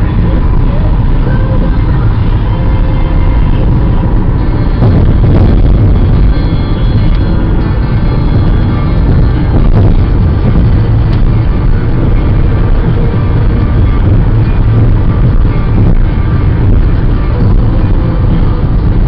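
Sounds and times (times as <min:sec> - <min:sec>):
faint music: 0:00.0 - 0:19.0
road and engine rumble: 0:00.0 - 0:19.0.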